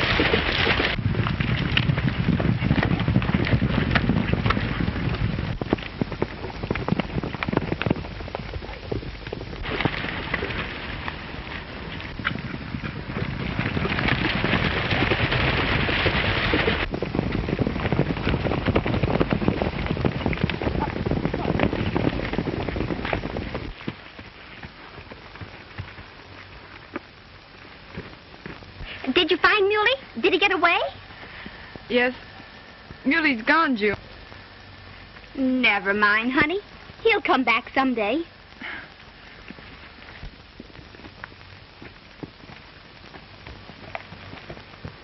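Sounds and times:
horses galloping: 0.0s - 45.0s.

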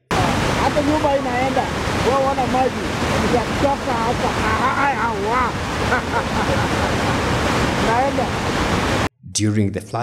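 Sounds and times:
river rushing in flood: 0.1s - 9.1s
voices calling out: 0.2s - 8.4s.

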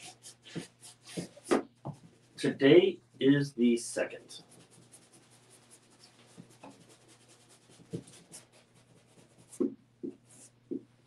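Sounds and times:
paintbrush scratching on canvas: 0.0s - 1.6s, 4.3s - 9.7s.

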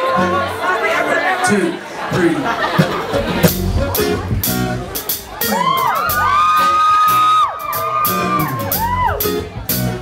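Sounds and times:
live band playing: 0.0s - 10.0s
audience whooping: 5.3s - 9.4s.

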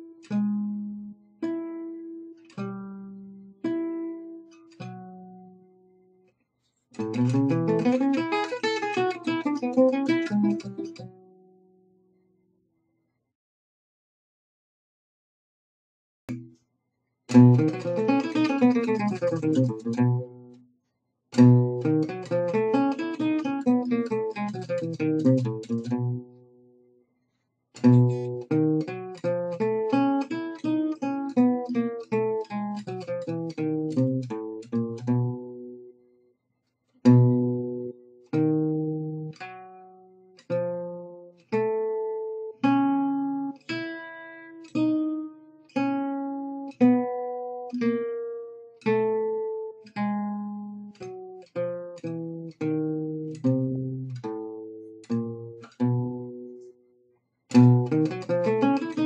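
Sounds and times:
solo jazz guitar picking: 0.0s - 5.6s, 7.0s - 11.6s, 17.3s - 20.6s, 21.4s - 26.4s, 27.8s - 35.9s, 37.0s - 56.7s, 57.5s - 59.0s.

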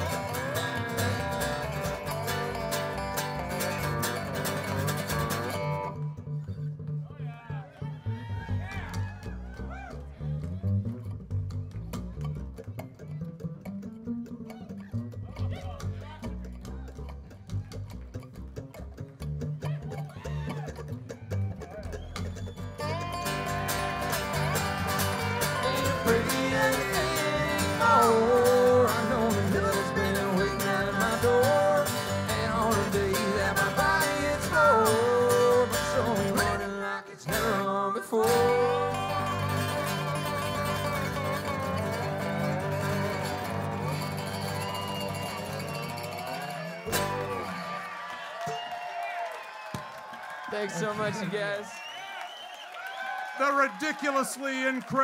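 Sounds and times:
acoustic string band playing: 0.0s - 6.0s, 22.8s - 36.7s, 37.3s - 47.6s
plucked upright bass: 0.0s - 47.6s.

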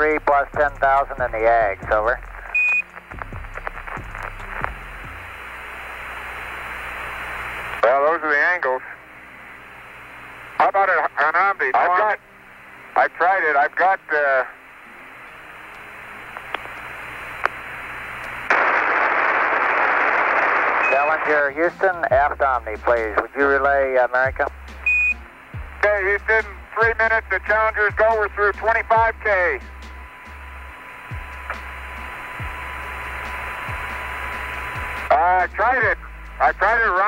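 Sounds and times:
low hum: 0.0s - 7.8s, 14.5s - 37.0s
radio static hiss: 0.0s - 37.0s.

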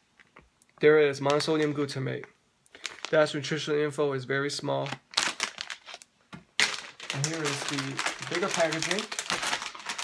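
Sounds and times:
plastic snack bag crinkling: 2.7s - 3.4s, 4.8s - 10.0s.

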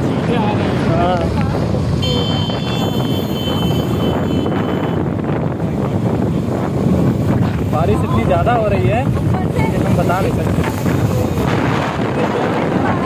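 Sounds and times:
heavy rain: 0.0s - 3.1s, 3.7s - 13.0s
road noise: 0.0s - 13.0s
wind buffeting microphone: 0.0s - 13.0s.

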